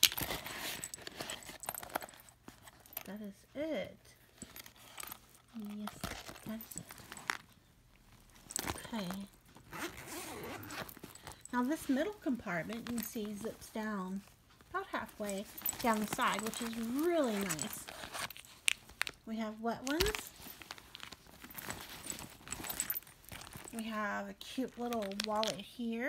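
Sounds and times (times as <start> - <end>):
zipper being pulled open: 0.0 - 2.2, 8.4 - 11.6, 15.5 - 18.8
rummaging through a handbag: 0.0 - 26.0.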